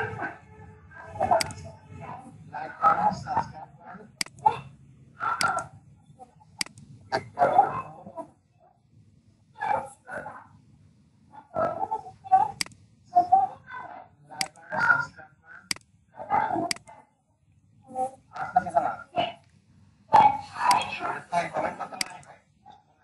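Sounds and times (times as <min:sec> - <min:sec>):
computer mouse clicks: 0:01.4 - 0:01.6, 0:04.2 - 0:04.5, 0:05.3 - 0:05.7, 0:06.6 - 0:06.9, 0:12.5 - 0:12.8, 0:14.4 - 0:14.7, 0:15.7 - 0:15.9, 0:16.6 - 0:17.0, 0:22.0 - 0:22.3
person speaking: 0:20.1 - 0:22.4.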